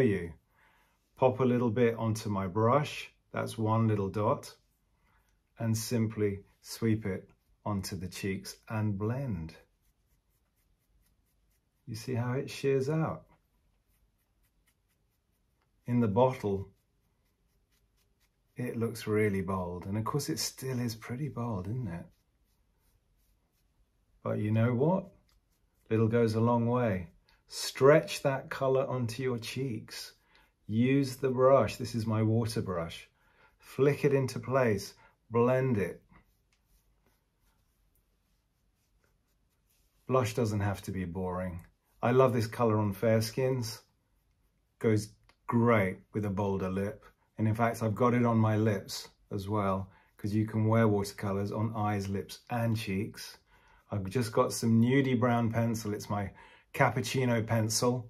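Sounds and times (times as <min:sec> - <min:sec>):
brush swishing over skin: 0:00.0 - 0:58.0.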